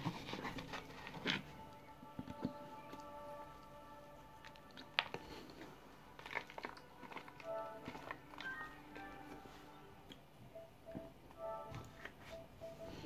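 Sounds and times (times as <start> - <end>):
background music: 0.0 - 13.0
crunching cornstarch chunks: 4.4 - 9.2.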